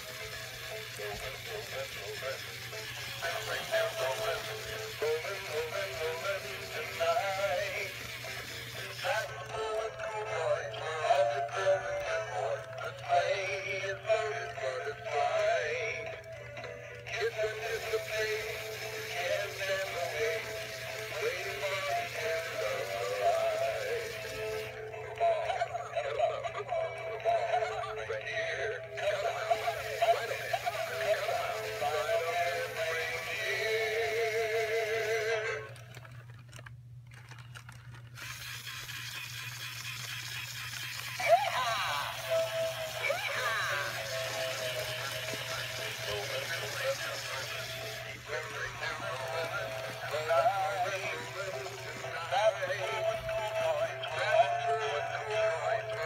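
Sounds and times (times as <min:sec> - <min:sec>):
singing voice: 0:00.0 - 0:36.0, 0:40.2 - 0:56.0
song from small speakers: 0:00.0 - 0:36.0, 0:40.4 - 0:56.0.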